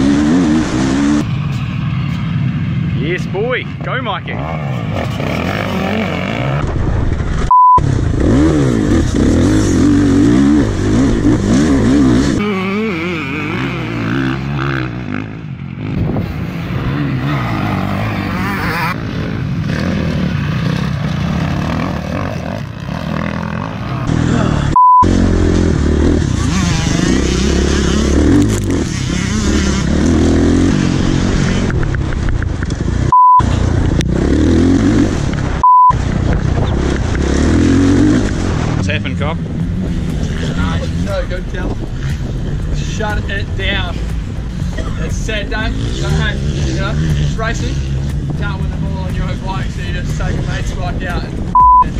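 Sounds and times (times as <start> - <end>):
motocross bike engine revving: 0.0 - 1.3, 4.3 - 6.8, 7.4 - 32.0, 32.8 - 35.9, 36.5 - 51.9
short loud single-tone bleeps: 7.5 - 7.8, 24.7 - 25.1, 33.1 - 33.5, 35.6 - 36.0, 51.6 - 51.9.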